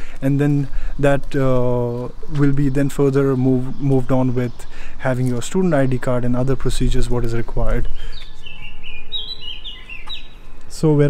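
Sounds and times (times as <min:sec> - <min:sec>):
songbird singing: 0:00.0 - 0:11.0.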